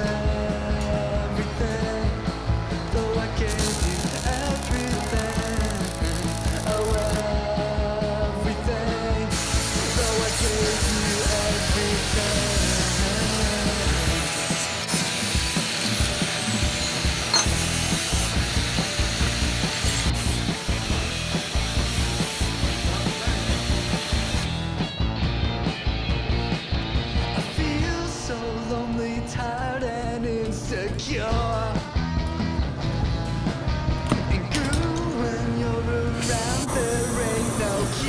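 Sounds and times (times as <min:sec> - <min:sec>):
rock song: 0:00.0 - 0:38.0
welding arc crackling: 0:03.4 - 0:07.3, 0:09.3 - 0:24.6, 0:36.2 - 0:38.0
angle grinder on steel: 0:03.5 - 0:07.2, 0:09.3 - 0:24.6, 0:36.3 - 0:38.0.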